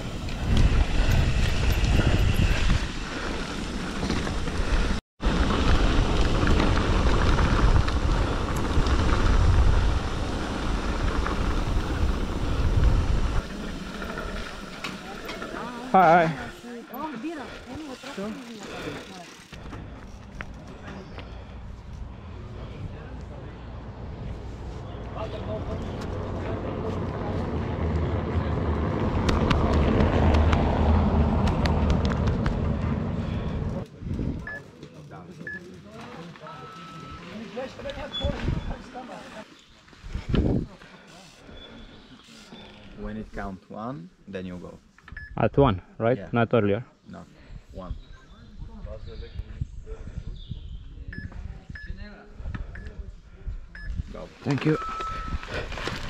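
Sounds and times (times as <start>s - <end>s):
wind on microphone: 0.0s - 3.1s, 5.4s - 13.6s, 40.0s - 40.8s, 47.6s - 54.2s
bike rattling over cobblestones: 0.0s - 21.6s, 25.1s - 33.8s.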